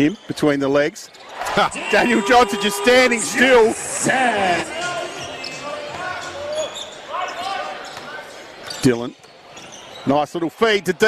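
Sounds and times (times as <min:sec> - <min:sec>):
voices calling: 0:01.4 - 0:06.4.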